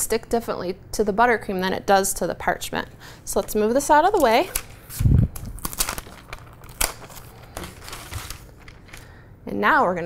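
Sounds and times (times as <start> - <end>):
parchment paper rustling: 3.9 - 9.2.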